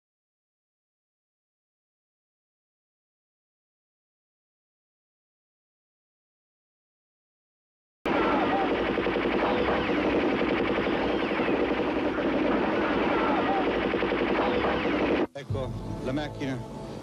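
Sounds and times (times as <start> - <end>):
rapid automatic gunfire: 8.1 - 15.3
voices: 8.1 - 16.7
man talking: 15.3 - 16.7.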